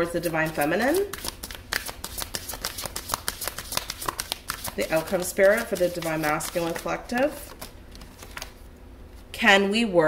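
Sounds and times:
cards being shuffled: 0:00.2 - 0:08.7.

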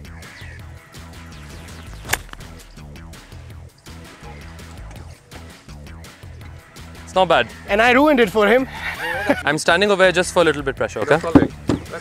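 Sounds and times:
background music with a beat: 0:00.0 - 0:09.5
golf club striking ball: 0:01.5 - 0:03.9.

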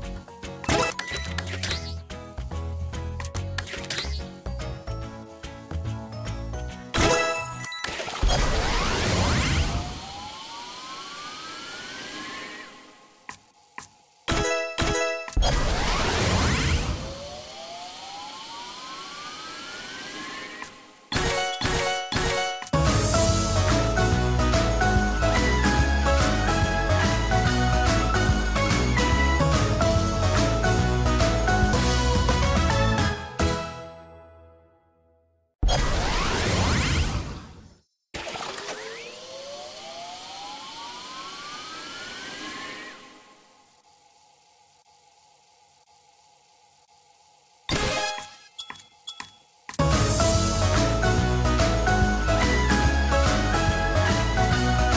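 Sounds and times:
rising whine of slot reels: 0:07.0 - 0:33.0, 0:35.7 - 0:48.5
rising tone over hiss: 0:09.7 - 0:13.2, 0:16.8 - 0:20.6.

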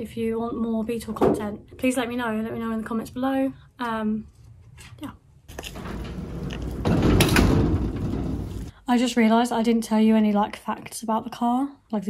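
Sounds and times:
roller door rattling down: 0:05.5 - 0:08.7.

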